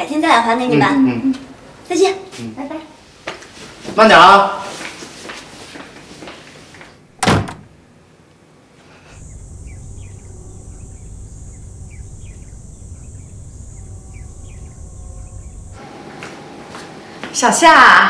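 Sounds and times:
low outdoor background hum: 0.0s - 18.0s
door shutting: 7.2s - 7.7s
faint high hiss: 8.8s - 18.0s.

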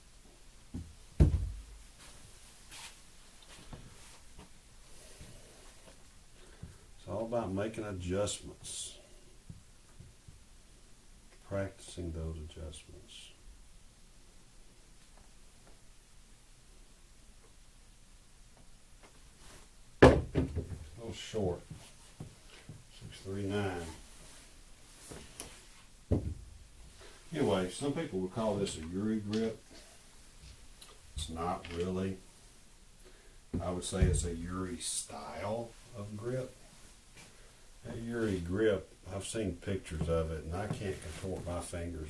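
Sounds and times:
dull thump: 1.2s - 1.6s, 20.0s - 20.9s, 26.1s - 26.6s.

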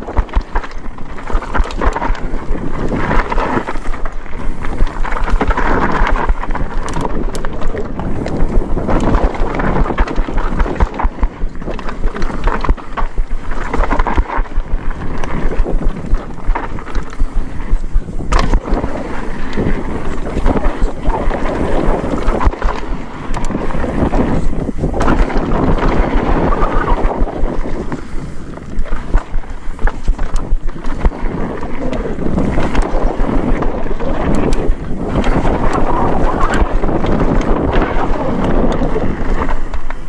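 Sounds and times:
tyres on dirt: 0.0s - 40.0s
wind on microphone: 0.0s - 40.0s.

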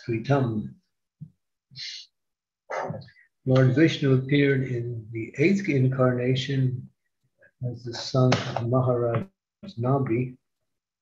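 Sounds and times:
man speaking: 0.0s - 0.8s, 1.7s - 10.5s.

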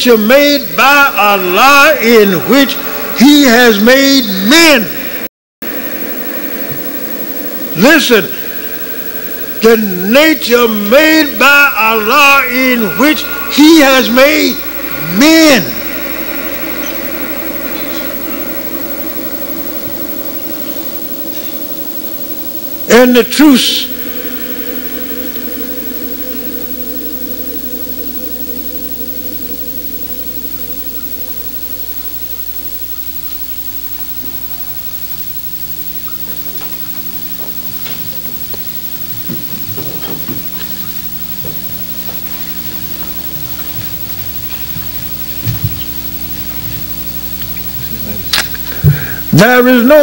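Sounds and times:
low electrical hum: 0.0s - 50.0s
steady hiss: 0.0s - 50.0s.

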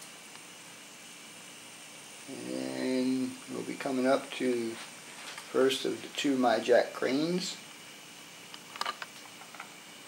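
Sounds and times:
even hiss: 0.0s - 10.0s
faint steady hum: 0.0s - 10.0s.

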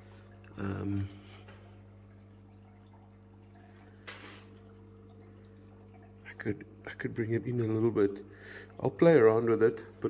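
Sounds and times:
aquarium air pump humming: 0.0s - 10.0s
water trickling and bubbling: 0.0s - 10.0s
soft hiss: 3.6s - 5.3s.

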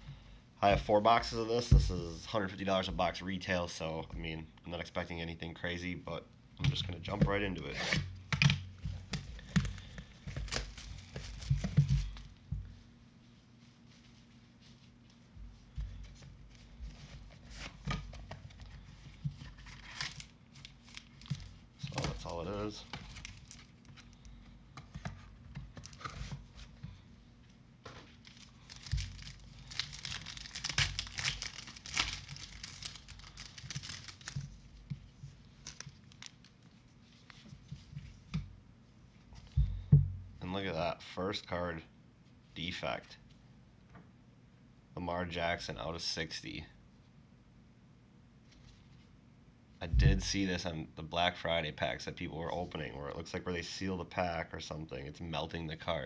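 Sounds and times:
plastic shrink-wrap tearing: 19.5s - 24.2s, 28.1s - 34.5s
soft thump: 39.5s - 40.3s, 50.0s - 50.3s.

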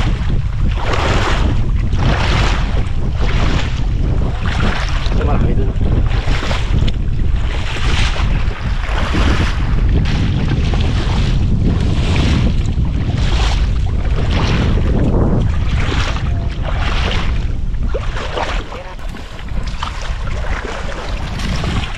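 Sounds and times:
legs wading through shallow water: 0.0s - 21.9s
wind buffeting microphone: 0.0s - 21.9s.

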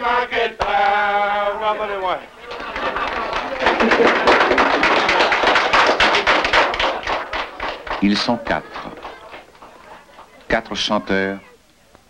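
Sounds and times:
people clapping: 0.6s - 1.1s, 2.3s - 11.2s.

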